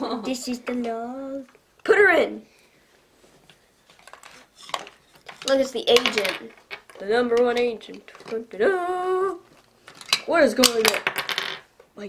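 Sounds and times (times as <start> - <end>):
plastic toy clicks and taps: 4.1 - 8.4.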